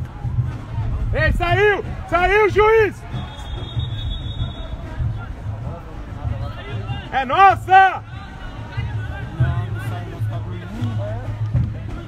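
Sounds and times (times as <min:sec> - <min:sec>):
distant shouting of players: 0:01.3 - 0:11.0.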